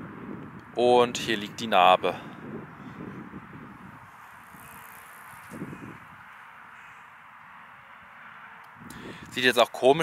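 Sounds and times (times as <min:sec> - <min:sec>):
faint outdoor background noise: 0:00.0 - 0:10.0.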